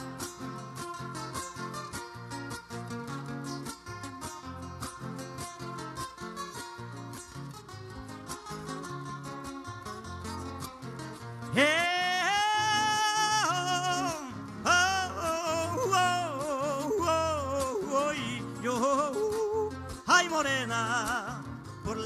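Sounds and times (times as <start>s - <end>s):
acoustic guitars strumming: 0.0s - 22.0s
man singing wordless notes: 11.5s - 22.0s.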